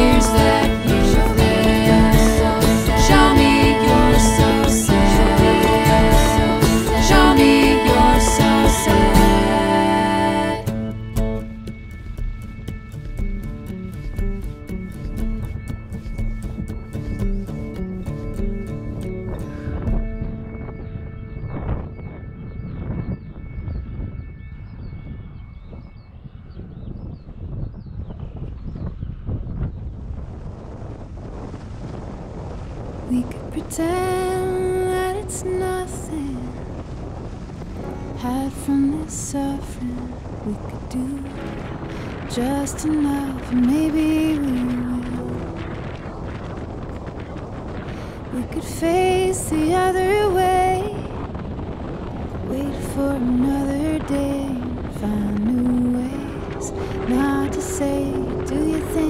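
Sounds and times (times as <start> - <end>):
slow melody: 0.0 - 25.5, 52.4 - 59.0
music chord: 0.0 - 25.6, 55.8 - 59.0
wind buffeting the microphone: 0.0 - 59.0.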